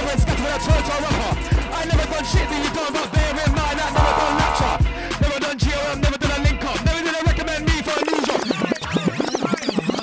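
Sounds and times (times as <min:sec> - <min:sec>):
record scratching: 0:04.0 - 0:04.8, 0:07.9 - 0:10.0.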